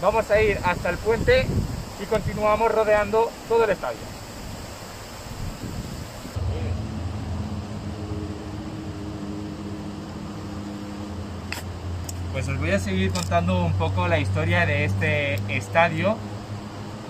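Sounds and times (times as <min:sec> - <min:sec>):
river rushing: 0:00.0 - 0:14.0
low machine hum: 0:06.3 - 0:12.4.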